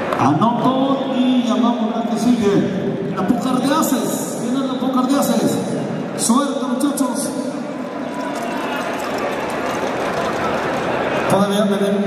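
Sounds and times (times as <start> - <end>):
crowd murmur: 7.3 - 11.4.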